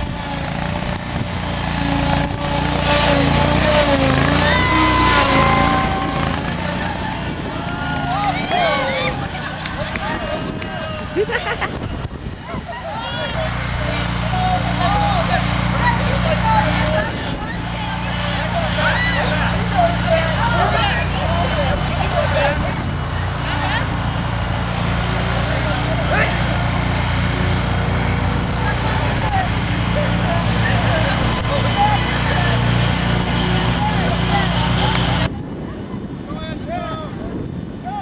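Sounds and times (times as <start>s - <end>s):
lawnmower engine humming: 0.0s - 35.3s
people calling out: 1.8s - 35.3s.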